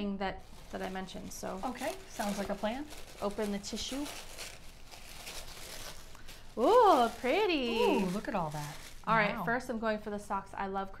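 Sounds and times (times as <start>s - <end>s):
tissue paper rustling: 0.4s - 9.7s.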